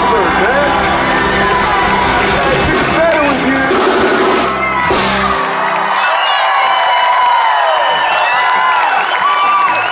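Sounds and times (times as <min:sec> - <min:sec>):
live band playing: 0:00.0 - 0:06.1
crowd cheering and whooping: 0:00.0 - 0:09.9.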